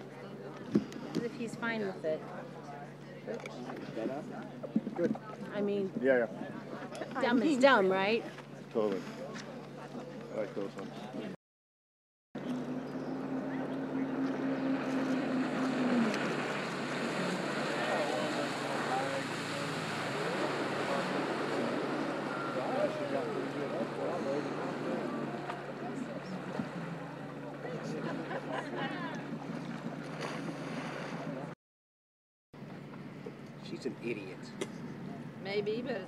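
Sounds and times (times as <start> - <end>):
jet ski engine: 0.0 - 11.3, 12.4 - 31.6, 32.6 - 36.0
water churning: 12.4 - 31.6.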